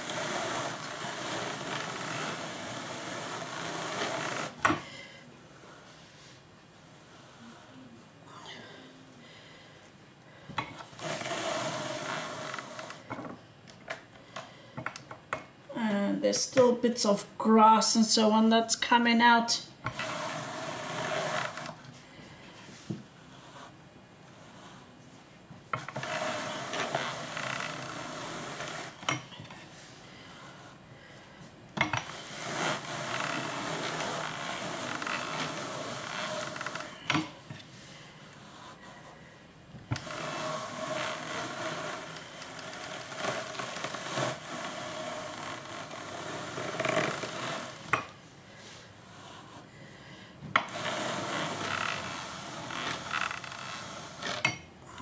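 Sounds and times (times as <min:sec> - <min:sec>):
drum carder scratchy whir: 0:00.0 - 0:04.7, 0:19.9 - 0:21.8, 0:40.0 - 0:48.0.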